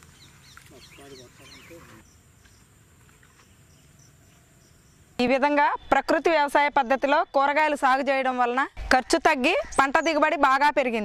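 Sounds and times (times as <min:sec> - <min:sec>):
insect chirping: 0:00.0 - 0:07.4.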